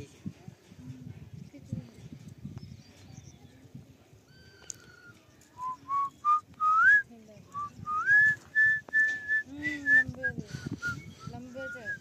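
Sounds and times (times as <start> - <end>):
person whistling a tune: 5.6 - 7.0, 7.6 - 12.0.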